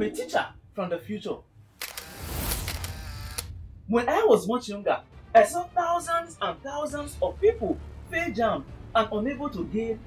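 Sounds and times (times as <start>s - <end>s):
crackling electric zap: 1.9s - 3.5s
low rumble: 2.7s - 4.3s.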